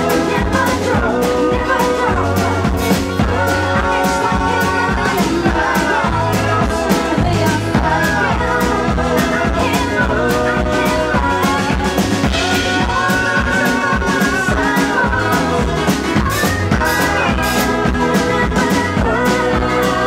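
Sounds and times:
pop band playing: 0:00.0 - 0:20.0
woman singing into microphone: 0:00.0 - 0:20.0.

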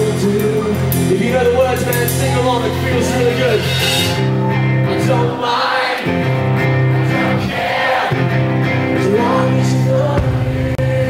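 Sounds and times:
live rock band: 0:00.0 - 0:11.0
cymbals struck: 0:02.0 - 0:04.4.

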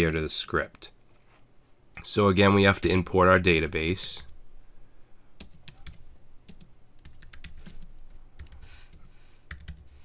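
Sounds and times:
typing on computer keyboard: 0:05.4 - 0:09.9.

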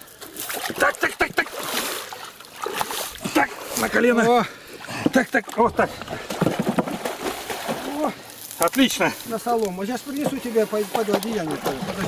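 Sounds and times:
water splashing and sloshing: 0:00.0 - 0:12.0.

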